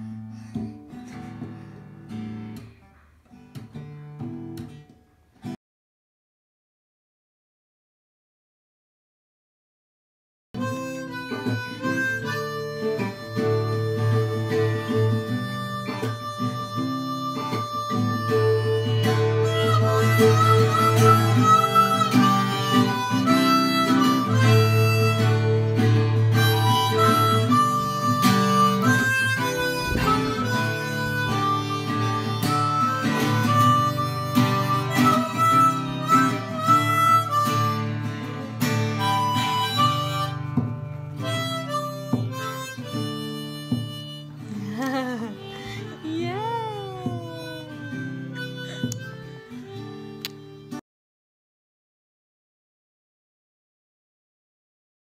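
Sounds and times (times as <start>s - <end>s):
acoustic guitar: 0.0s - 5.6s, 10.6s - 50.8s
harmonica melody: 10.6s - 50.8s.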